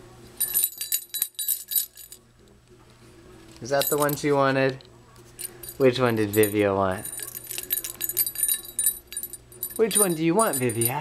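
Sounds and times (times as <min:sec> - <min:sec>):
toy rattle jingling: 0:00.4 - 0:02.2, 0:03.7 - 0:04.3, 0:05.4 - 0:11.0.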